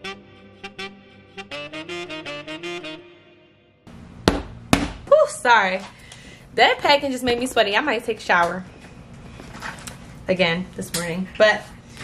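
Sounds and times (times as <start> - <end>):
instrumental music melody: 0.0 - 3.9
loud thumps: 4.2 - 5.1.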